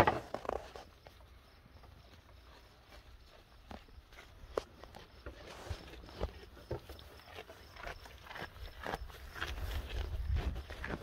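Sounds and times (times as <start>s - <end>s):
goats nibbling leafy greens: 0.2s - 11.0s.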